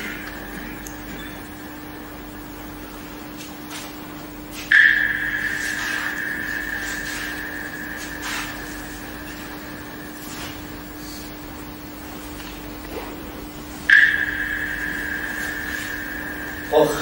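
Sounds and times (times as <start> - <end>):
high ringing tone: 0.0 - 12.8, 13.4 - 17.0
steady low hum: 0.0 - 17.0.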